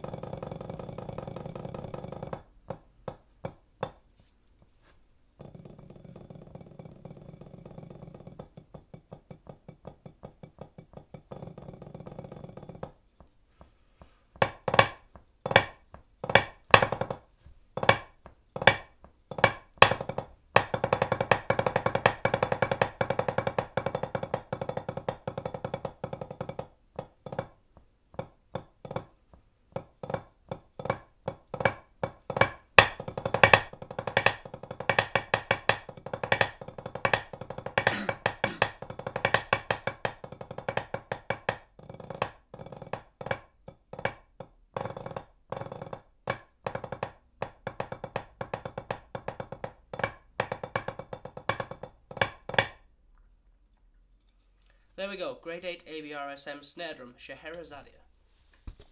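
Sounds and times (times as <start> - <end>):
snare drumming on a practice pad: 0.0 - 4.0, 14.0 - 52.8.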